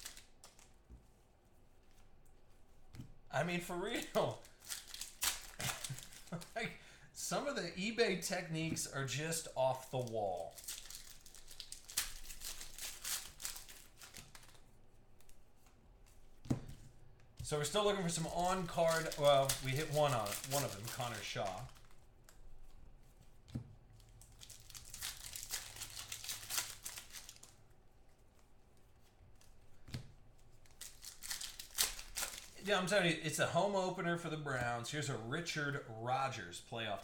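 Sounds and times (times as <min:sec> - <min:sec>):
foil wrapper tearing and crinkling: 0:00.0 - 0:00.7, 0:03.5 - 0:06.7, 0:09.3 - 0:14.6, 0:17.5 - 0:22.0, 0:24.2 - 0:27.6, 0:30.6 - 0:32.7.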